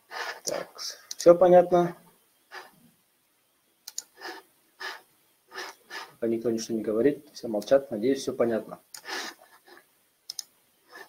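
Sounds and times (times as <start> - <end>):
person breathing: 4.2 - 6.2, 9.0 - 9.9
sharp click: 10.3 - 10.5.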